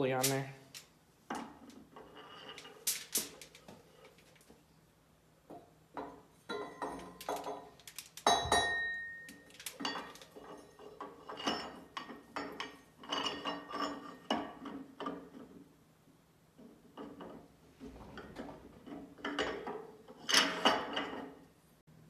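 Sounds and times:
metal clinks and knocks: 5.5 - 15.6, 16.9 - 21.4.

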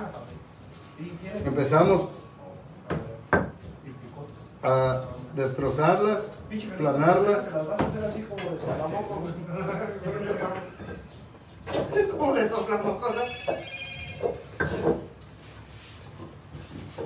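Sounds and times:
people talking: 11.8 - 14.2
high ringing tone: 13.1 - 14.4.

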